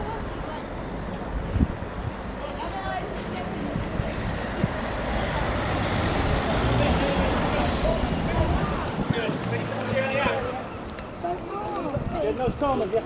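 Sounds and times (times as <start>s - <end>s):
people chatting: 0.0s - 1.4s, 2.4s - 13.0s.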